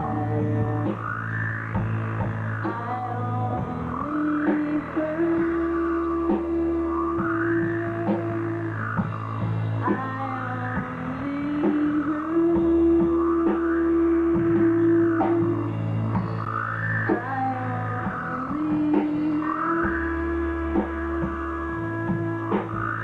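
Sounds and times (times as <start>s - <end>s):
drum strokes: 0.0s - 23.0s
rock band playing: 0.0s - 23.0s.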